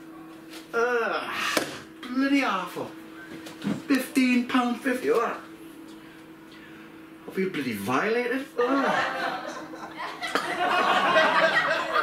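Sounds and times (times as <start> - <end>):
man groaning in disgust: 0.7 - 1.6.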